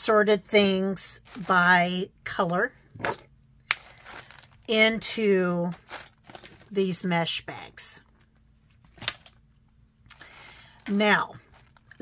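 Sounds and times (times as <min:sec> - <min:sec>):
plastic bags rustling: 0:01.1 - 0:01.9, 0:03.8 - 0:07.0, 0:10.2 - 0:12.0.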